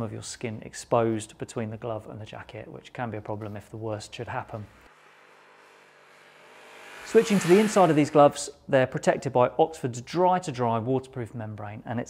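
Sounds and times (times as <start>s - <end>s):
motorcycle approaching: 4.8s - 8.4s.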